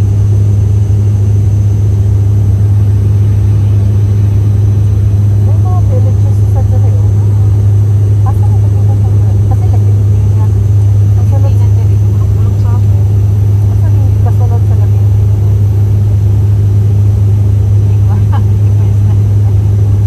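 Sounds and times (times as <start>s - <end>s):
airliner cabin drone: 0.0s - 20.0s
faint talking: 17.8s - 19.8s.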